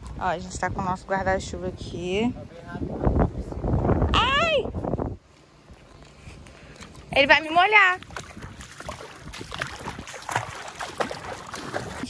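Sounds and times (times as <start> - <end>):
water splashing from wading: 6.6 - 12.0.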